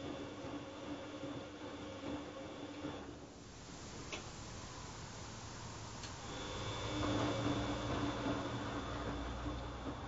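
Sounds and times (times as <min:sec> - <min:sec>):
washing machine drum motor humming: 0:00.0 - 0:10.0.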